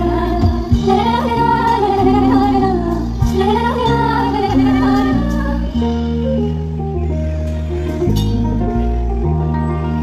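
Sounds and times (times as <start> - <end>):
live band music through pa: 0.0 - 10.0.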